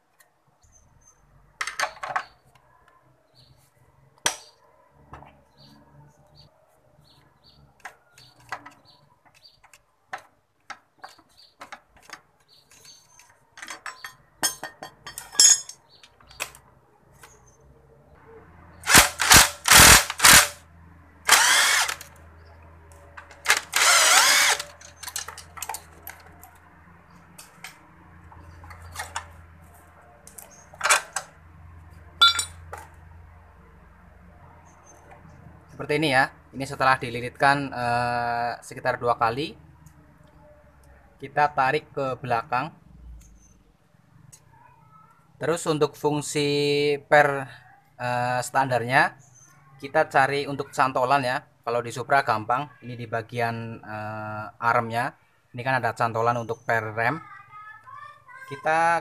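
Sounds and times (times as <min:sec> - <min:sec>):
impact wrench hammering: 0:32.2 - 0:32.6.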